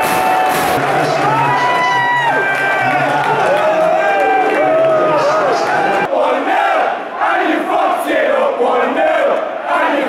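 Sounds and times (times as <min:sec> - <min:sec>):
crowd chanting and shouting: 0:00.0 - 0:10.0.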